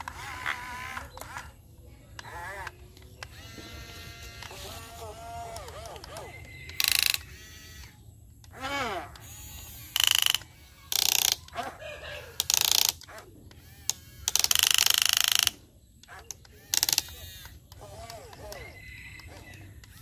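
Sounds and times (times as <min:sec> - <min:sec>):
ratcheting gears: 0:00.0 - 0:11.6, 0:12.3 - 0:20.0
toy electric motors whirring: 0:00.0 - 0:20.0.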